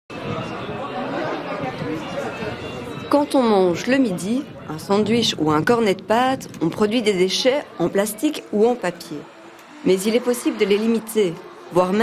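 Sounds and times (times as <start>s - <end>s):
group of people chattering: 0.1s - 12.0s.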